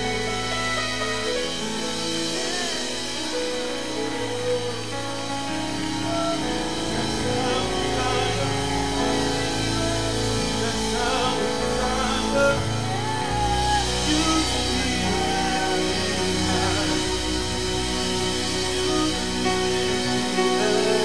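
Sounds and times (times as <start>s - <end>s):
worship band playing: 0.0s - 21.0s
voices singing: 1.2s - 21.0s
low bass notes: 4.2s - 21.0s.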